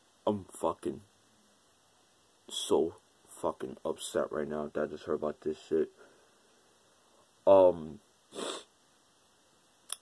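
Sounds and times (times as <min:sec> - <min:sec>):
person speaking: 0:02.5 - 0:06.0
person sniffing: 0:08.3 - 0:08.7.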